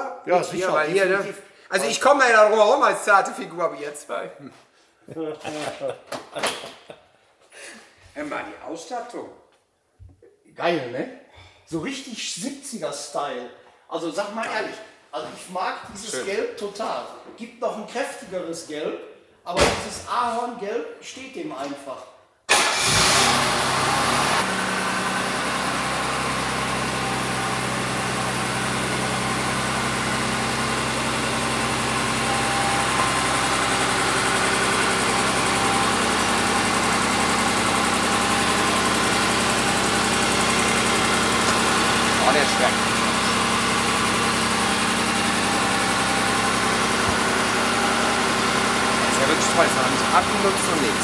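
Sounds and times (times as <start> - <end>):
car engine starting and idling: 22.5 - 51.0.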